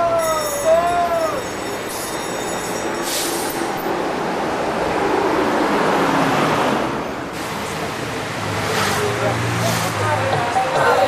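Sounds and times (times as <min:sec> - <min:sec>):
bus driving past: 0:02.4 - 0:11.0.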